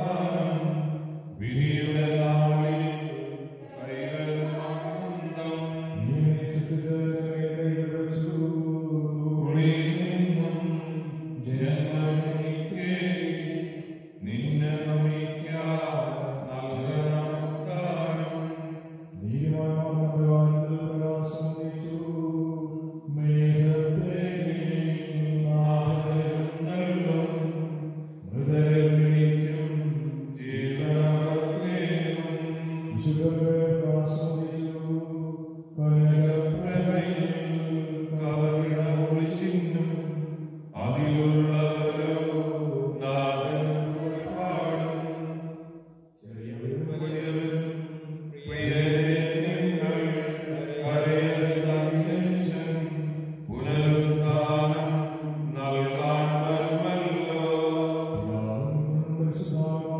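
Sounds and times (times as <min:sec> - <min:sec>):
man chanting a prayer: 0:00.0 - 0:45.5, 0:46.2 - 0:59.9.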